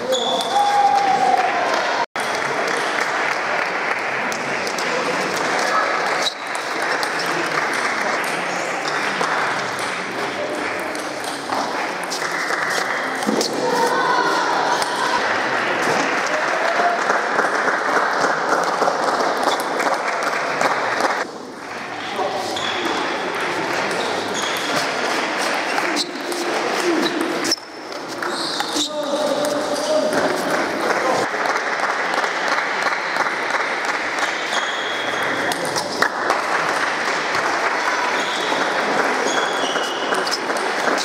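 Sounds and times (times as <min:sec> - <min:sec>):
hum of many voices: 0:00.0 - 0:41.0.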